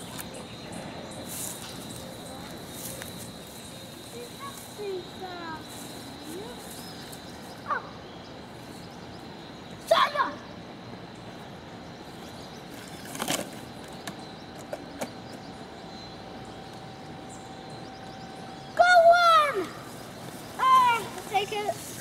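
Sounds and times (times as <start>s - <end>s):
child's high-pitched call: 9.9s - 10.5s, 18.8s - 19.9s, 20.6s - 21.8s
plants rustling: 19.6s - 22.0s.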